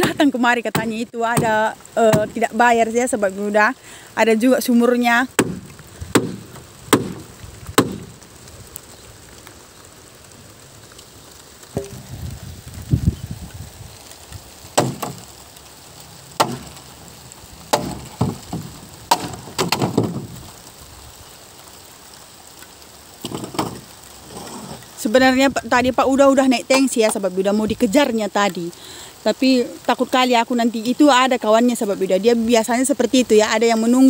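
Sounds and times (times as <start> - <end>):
wooden railing knocking and cracking: 17.7 - 20.4, 23.2 - 23.9.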